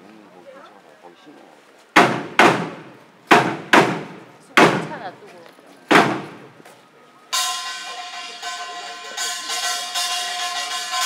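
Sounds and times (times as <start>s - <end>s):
sharp percussion strikes: 7.4s - 11.0s
small brass gong ringing: 7.4s - 11.0s.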